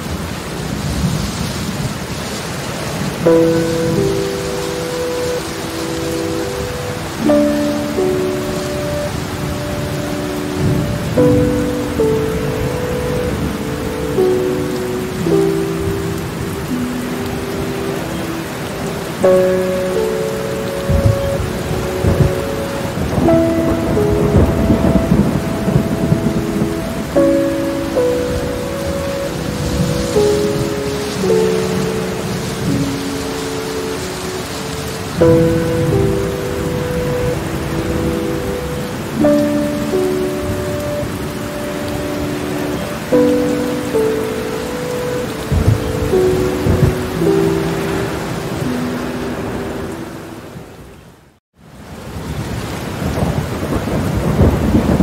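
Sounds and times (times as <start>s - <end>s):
thunder rumbling: 0.0s - 50.2s, 52.2s - 55.0s
steady rain: 0.0s - 55.0s
soft instrumental music: 3.0s - 51.0s.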